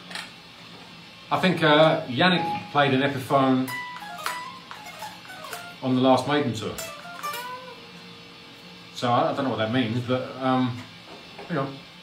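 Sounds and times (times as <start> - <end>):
electric guitar single notes: 2.4 - 8.6
guitar string clicks: 3.7 - 5.8.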